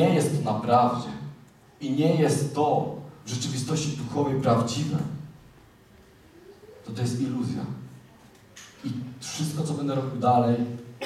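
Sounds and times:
man speaking: 0.0s - 5.3s, 6.8s - 7.8s, 8.8s - 10.8s.

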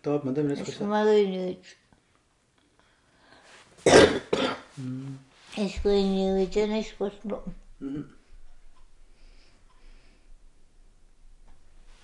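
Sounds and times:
person coughing: 3.8s - 4.9s, 7.8s - 8.2s
low voiced sound: 4.8s - 5.2s, 7.8s - 8.2s.

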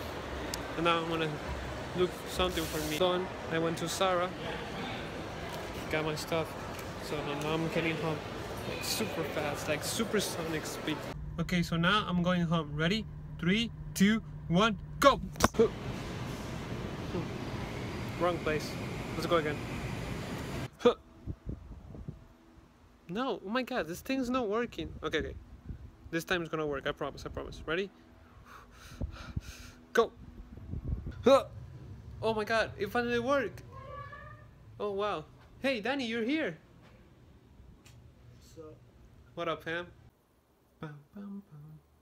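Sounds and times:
indoor store background noise: 0.0s - 40.2s
man humming short notes: 40.8s - 41.9s.

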